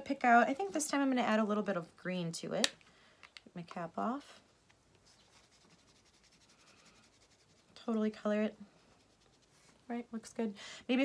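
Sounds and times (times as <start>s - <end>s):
marker scratching on clay: 5.0s - 8.0s.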